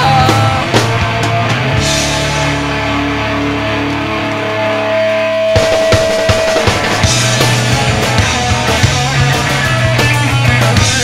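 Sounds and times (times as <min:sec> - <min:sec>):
bass guitar: 0:00.0 - 0:11.0
electric guitar chords: 0:00.0 - 0:11.0.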